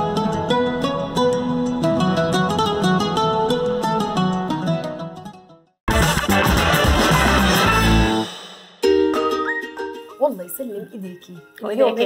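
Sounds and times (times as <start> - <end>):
television music jingle: 5.9 - 12.0.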